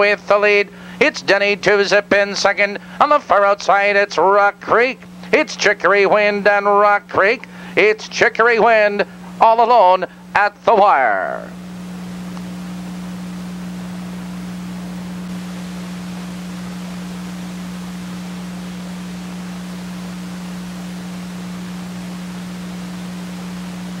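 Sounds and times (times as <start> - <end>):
mains hum: 0.0 - 24.0
tape hiss: 0.0 - 24.0.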